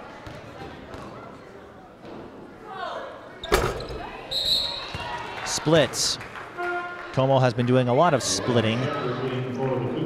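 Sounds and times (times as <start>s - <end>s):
low gym chatter: 0.0s - 5.6s.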